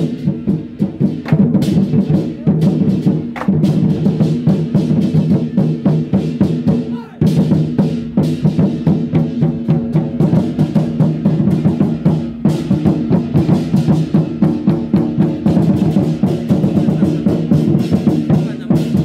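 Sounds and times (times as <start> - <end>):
war drums beaten in fast rhythm: 0.0 - 19.0.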